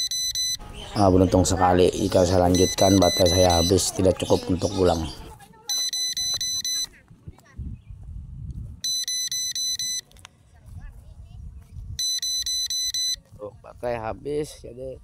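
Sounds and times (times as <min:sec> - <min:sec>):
rapid high-pitched beeps: 0:00.0 - 0:00.6, 0:02.4 - 0:03.9, 0:05.7 - 0:06.9, 0:08.8 - 0:10.0, 0:12.0 - 0:13.2.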